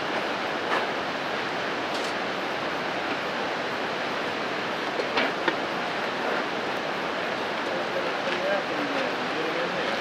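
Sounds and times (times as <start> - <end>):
river rushing: 0.0 - 10.0.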